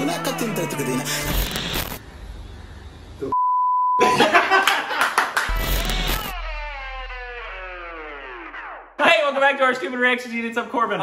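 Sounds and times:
noisy clicking sound effects: 5.5s - 8.7s
downward sliding tones: 5.5s - 9.0s.

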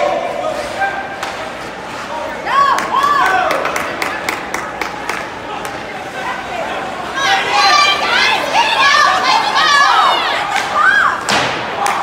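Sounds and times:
spectators shouting: 6.3s - 12.0s.

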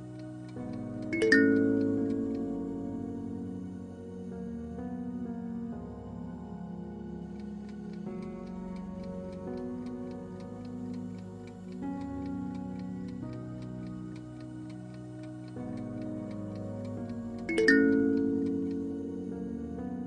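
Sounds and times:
clock ticking: 0.0s - 3.0s, 7.4s - 19.2s
soft background music: 0.0s - 20.0s
bright ringing sound effect: 1.1s - 2.8s, 17.5s - 19.2s.

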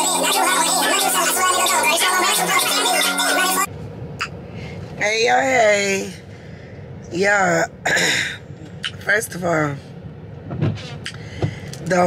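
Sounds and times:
woman's voice: 5.0s - 6.2s, 7.1s - 7.8s, 8.9s - 9.9s, 11.8s - 12.0s.

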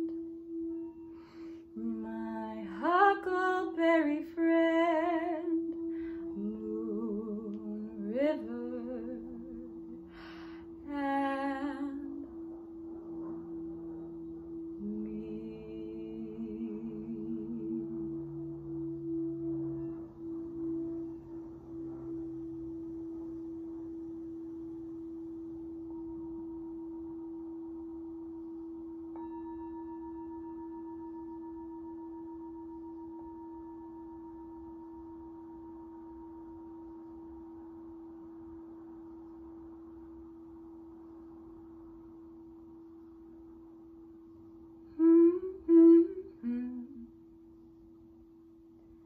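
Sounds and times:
singing bowl struck: 0.0s - 47.5s
singing bowl ringing: 0.0s - 49.0s.

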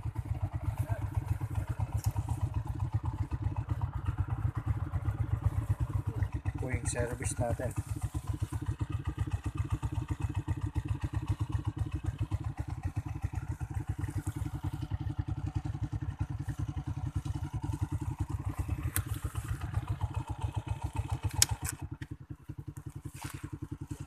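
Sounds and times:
motorcycle engine idling: 0.0s - 24.0s
sharp click: 21.3s - 21.8s.

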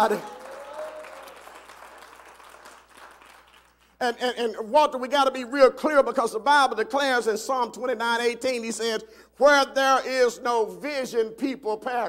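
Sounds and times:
congregation applauding: 0.0s - 4.4s.

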